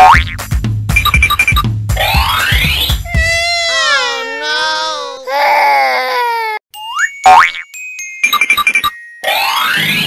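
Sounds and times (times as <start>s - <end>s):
cartoon crying wail: 3.1s - 6.6s.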